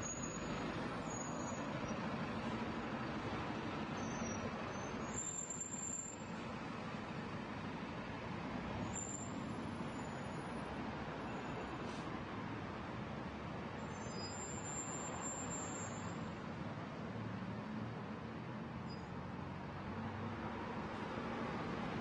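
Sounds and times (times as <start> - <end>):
hum of engines and tyres: 0.0 - 22.0.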